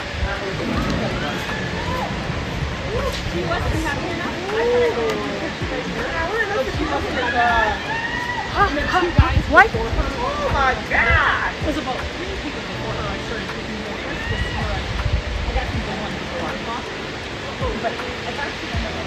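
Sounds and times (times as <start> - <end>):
waterfall rushing: 0.0 - 19.0
excited voices calling out: 0.6 - 11.7.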